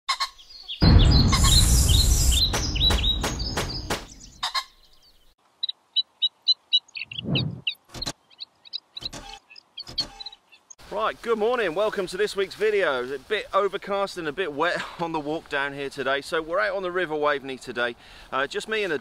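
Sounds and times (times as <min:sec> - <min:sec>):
bird chirping: 0:00.1 - 0:10.8.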